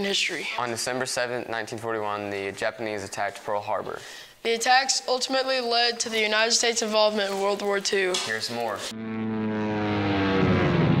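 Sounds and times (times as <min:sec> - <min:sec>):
low rumble: 0:08.9 - 0:11.0.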